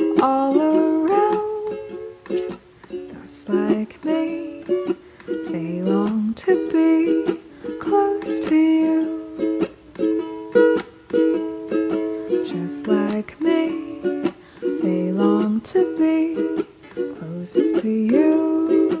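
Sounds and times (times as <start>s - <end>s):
ukulele plucking and strumming: 0.0s - 19.0s.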